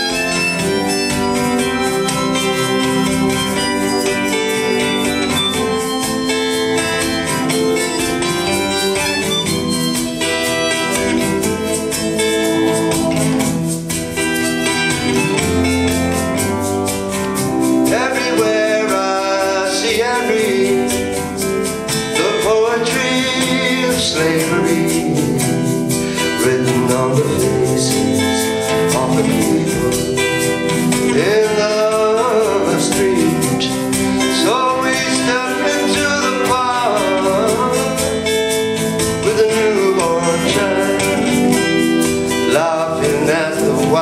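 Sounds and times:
folk band playing live: 0.0s - 44.0s
keyboard chords: 0.0s - 44.0s
strummed acoustic guitar: 0.0s - 44.0s.

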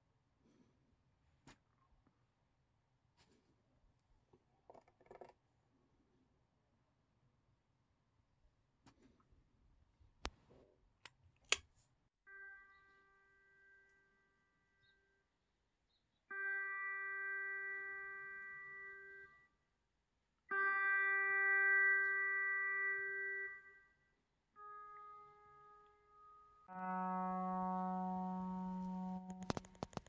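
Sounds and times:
pedal steel guitar note: 26.7s - 29.9s.

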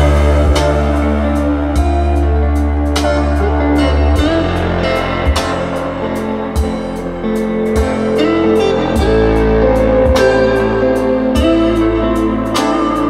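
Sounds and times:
song over loudspeakers: 0.0s - 13.0s.

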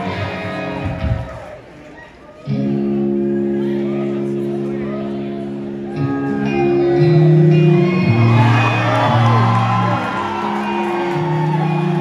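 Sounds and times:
crowd whooping and shouting: 0.0s - 2.8s, 3.4s - 12.0s
live rock band playing: 2.5s - 12.0s.

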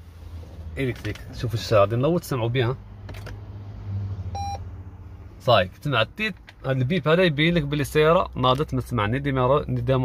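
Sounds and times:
short electronic beep: 4.4s - 4.6s.

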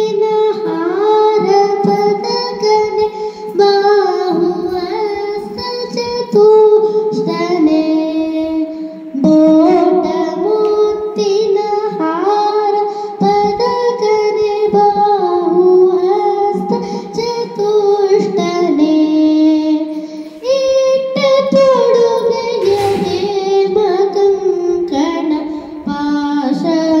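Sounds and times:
high child-like voice singing: 0.0s - 27.0s.

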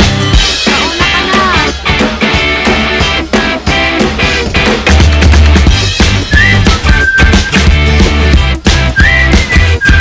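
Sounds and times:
music with beat and bass: 0.0s - 10.0s
whistled melody: 6.1s - 8.0s, 8.6s - 10.0s.

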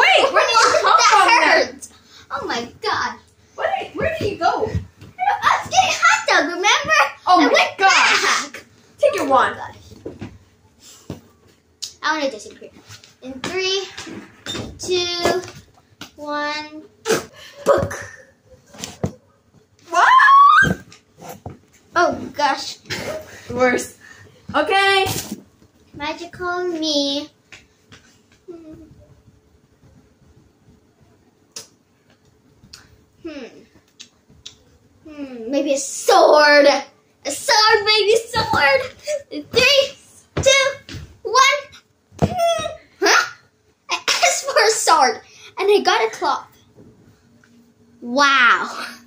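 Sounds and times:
child squealing: 19.9s - 20.8s.

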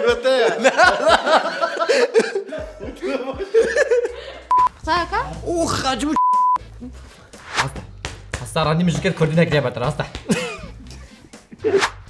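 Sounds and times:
censor bleep tone: 4.5s - 4.7s, 6.2s - 6.6s.

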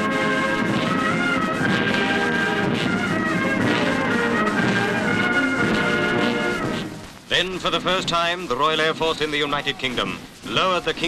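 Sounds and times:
brass band playing slow chords: 0.0s - 8.9s.

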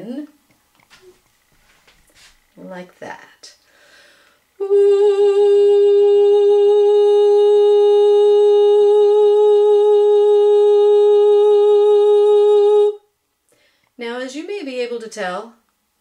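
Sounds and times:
woman singing a long note: 4.6s - 13.1s.

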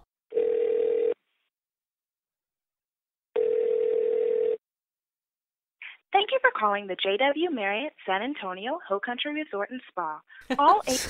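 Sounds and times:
telephone ringback tone: 0.3s - 1.2s, 3.4s - 4.6s.

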